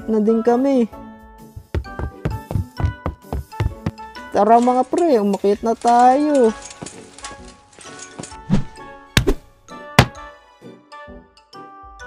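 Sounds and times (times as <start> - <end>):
background music: 0.0 - 12.0
cartoon thud effects: 8.6 - 10.2.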